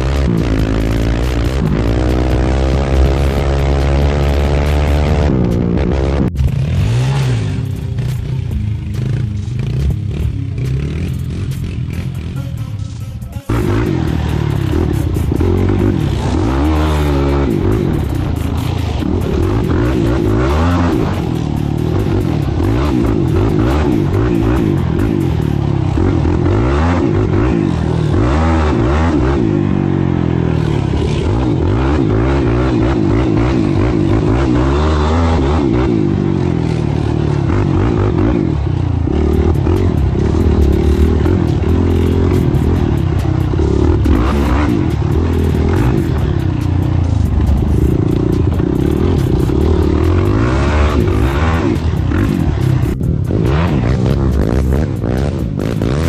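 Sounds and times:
atv engine revving: 0:00.0 - 0:56.0.

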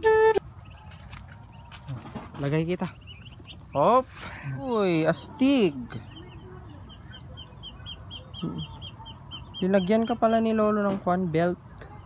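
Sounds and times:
small bird peeping: 0:00.4 - 0:10.8.

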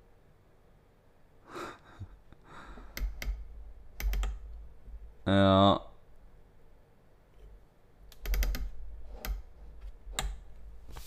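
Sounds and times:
sharp clicks: 0:04.0 - 0:04.4, 0:08.1 - 0:09.4.

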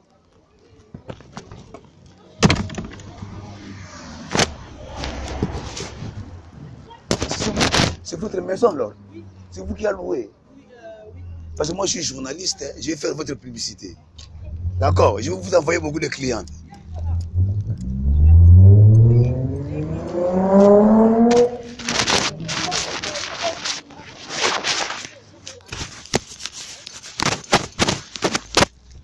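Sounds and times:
engine accelerating: 0:02.8 - 0:07.0, 0:14.2 - 0:23.1.

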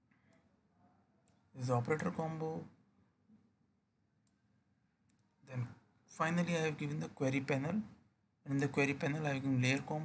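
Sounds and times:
computer mouse clicks: 0:05.0 - 0:05.3.

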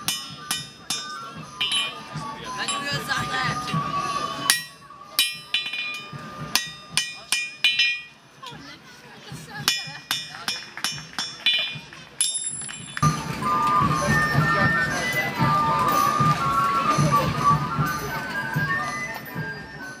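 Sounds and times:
hammer striking an anvil: 0:00.0 - 0:03.0, 0:04.5 - 0:08.2, 0:09.6 - 0:13.1
music: 0:00.0 - 0:20.0.

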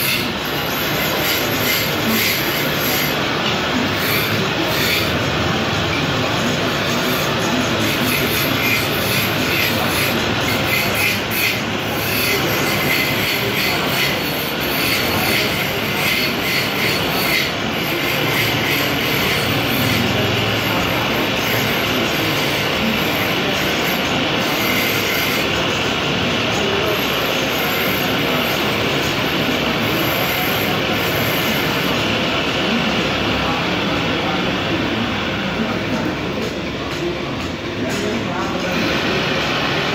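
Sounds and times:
wood lathe running: 0:00.0 - 0:39.9.

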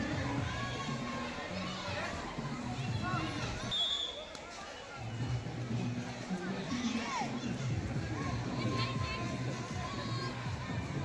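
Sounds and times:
children calling out and chattering: 0:00.0 - 0:11.0.

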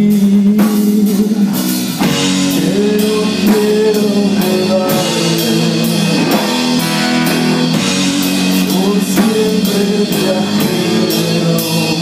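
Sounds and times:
drum kit: 0:00.0 - 0:12.0
electric guitar chords: 0:00.0 - 0:12.0.

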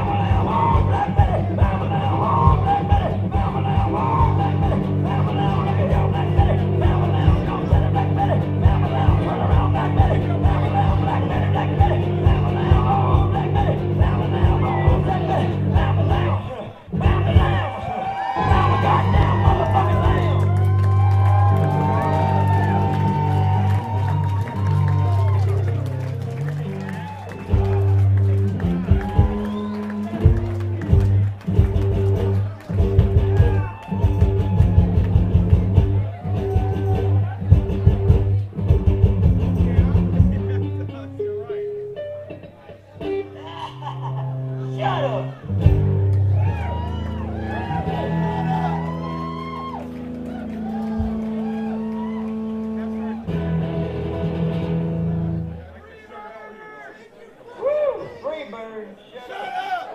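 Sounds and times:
bass notes: 0:00.0 - 0:43.4, 0:44.2 - 0:55.7
amplified electric guitar music: 0:00.0 - 0:55.6
voice: 0:39.6 - 0:41.8.

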